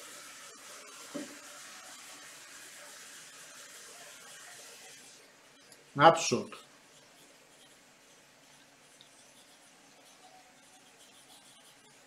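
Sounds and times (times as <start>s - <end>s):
microphone background hiss: 5.8s - 7.7s.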